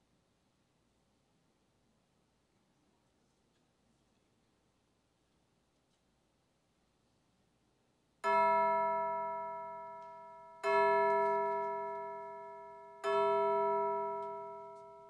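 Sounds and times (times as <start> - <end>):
bell ringing: 8.3 - 15.0.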